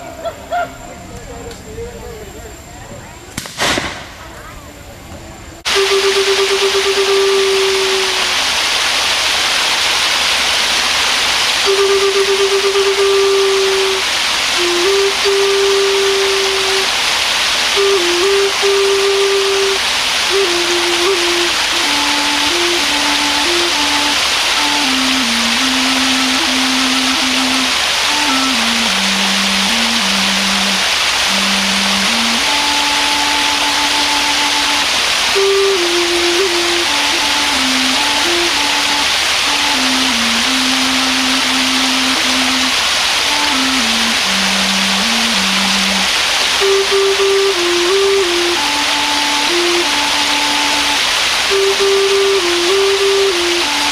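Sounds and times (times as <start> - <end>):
falling water rushing: 2.2 - 53.9
flute playing slow melody: 5.5 - 8.9, 10.8 - 53.9.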